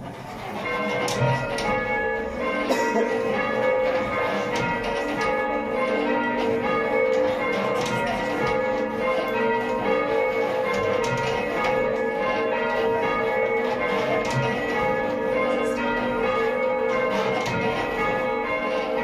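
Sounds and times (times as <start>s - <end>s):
church bells ringing: 0.0s - 19.0s.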